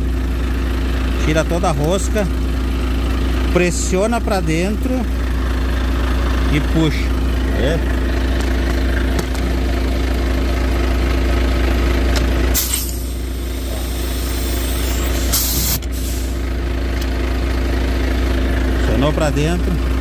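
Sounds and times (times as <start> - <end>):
truck engine idling: 0.0 - 20.0
compressed air hissing: 12.6 - 16.4.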